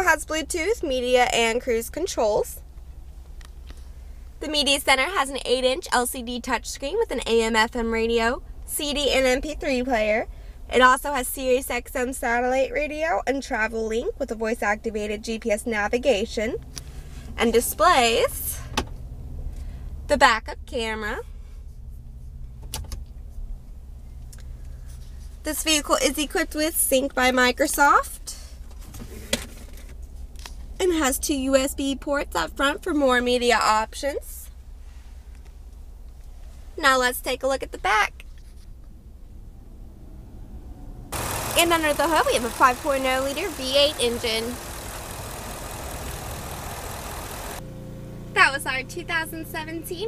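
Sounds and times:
truck engine idling: 41.1 - 50.0.

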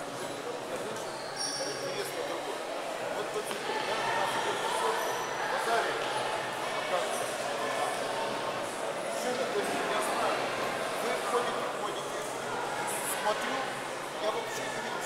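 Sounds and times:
echoing chatter of people: 0.0 - 15.0.

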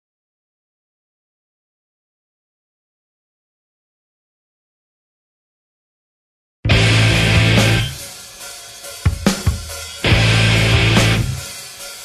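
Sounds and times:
sharp drum hits: 6.7 - 11.9
rock band chord: 6.7 - 12.0.

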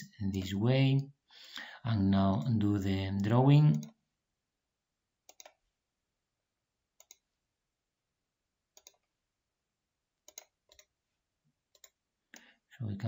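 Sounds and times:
computer mouse clicking: 0.3 - 0.6, 5.3 - 5.6, 7.0 - 7.3, 8.7 - 9.1, 10.2 - 10.9, 11.7 - 12.5.

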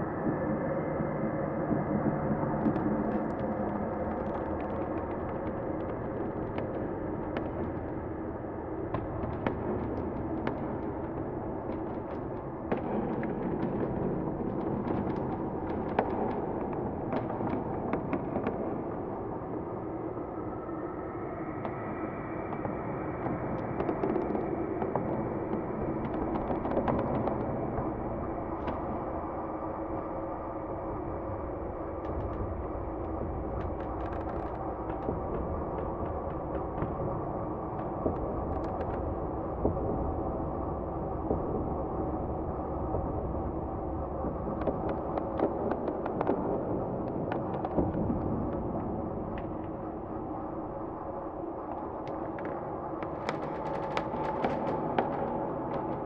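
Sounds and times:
dark droning ambience: 0.0 - 56.0.

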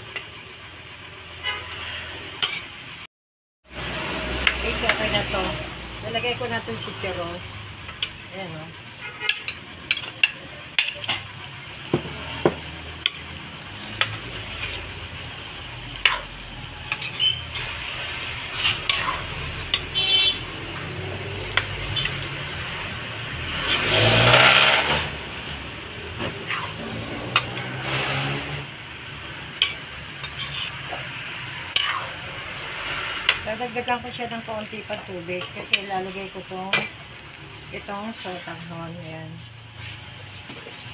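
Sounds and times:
low sizzle: 0.0 - 3.1, 3.7 - 40.9
metal spatula scraping wok: 1.4 - 3.0, 3.7 - 37.1, 37.8 - 40.9.

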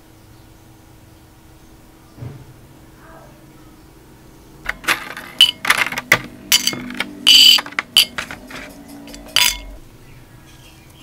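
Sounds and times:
coins clinking on ceramic plate: 4.7 - 9.8.

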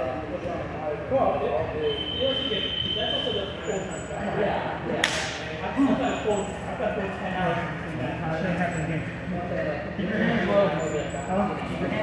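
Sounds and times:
men talking indistinctly: 0.0 - 12.0
sharp slap: 5.0 - 5.5.

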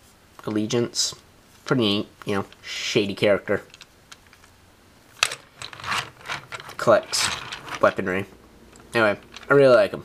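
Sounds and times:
toy car rustling: 3.5 - 4.6, 5.2 - 9.9.

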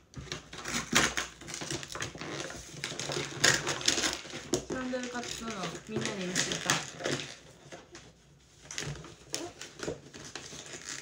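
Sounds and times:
objects clattering and knocking: 0.1 - 11.0.

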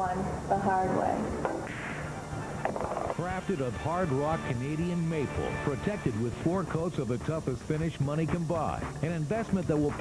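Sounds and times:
background music: 0.5 - 10.0
pool balls clacking: 2.6 - 3.3.

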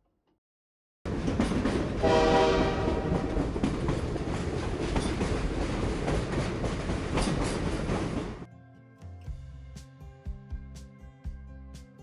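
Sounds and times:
train rumbling: 1.1 - 8.5
train wheel clacks: 1.1 - 8.5
train warning horn blast: 2.0 - 3.4.

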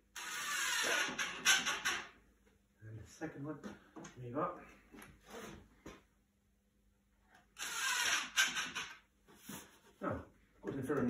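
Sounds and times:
cordless drill driving screw into wood: 0.1 - 2.1, 7.6 - 9.0.

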